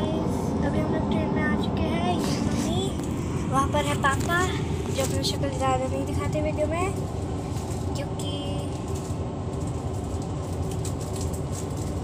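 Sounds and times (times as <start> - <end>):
girl speaking: 0.0 - 7.0, 7.9 - 8.8
train coach rumble: 0.0 - 12.0.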